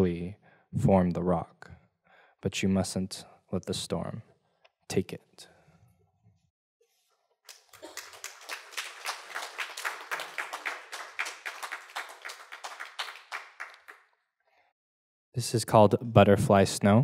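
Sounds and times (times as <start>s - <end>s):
audience applauding: 7.5s - 14.1s.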